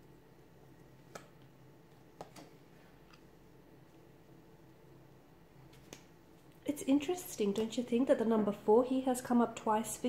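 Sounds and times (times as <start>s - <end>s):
woman speaking: 6.6s - 10.0s.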